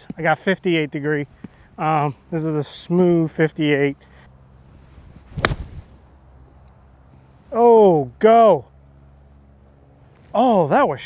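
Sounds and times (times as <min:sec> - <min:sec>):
golf club striking ball: 0:05.3 - 0:05.9.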